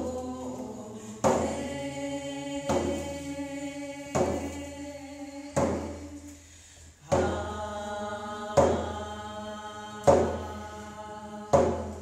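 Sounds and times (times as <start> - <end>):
woman singing chant-like song: 0.0 - 6.3, 7.0 - 12.0
hand drum beats: 5.5 - 6.1, 7.0 - 7.6, 8.5 - 9.0, 10.0 - 10.6, 11.5 - 12.0.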